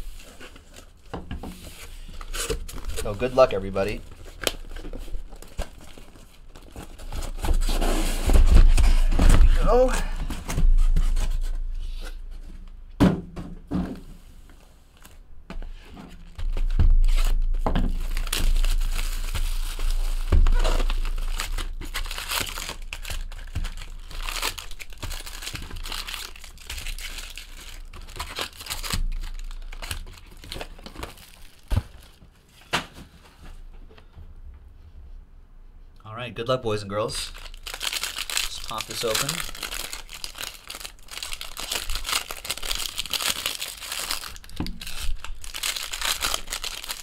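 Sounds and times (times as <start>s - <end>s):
plastic wrap tearing and crumpling: 1.8s - 11.5s, 16.2s - 32.2s, 37.2s - 47.0s
foil packs crinkling: 1.8s - 11.6s, 16.2s - 32.2s, 37.1s - 47.0s.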